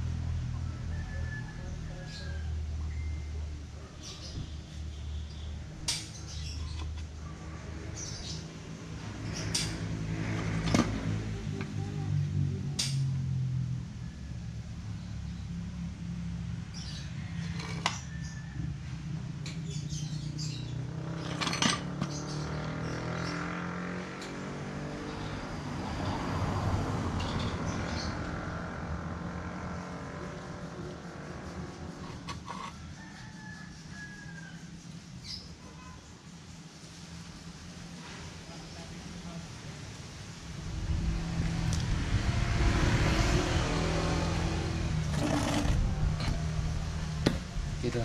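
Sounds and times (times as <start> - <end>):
vehicle engines humming: 0.0 - 48.0.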